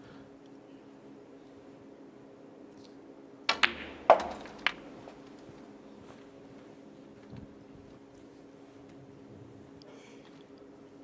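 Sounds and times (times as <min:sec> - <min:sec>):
ball knock with ring: 0:03.5 - 0:04.8
cue striking ball: 0:03.5 - 0:05.3
snooker balls clicking: 0:03.5 - 0:05.6.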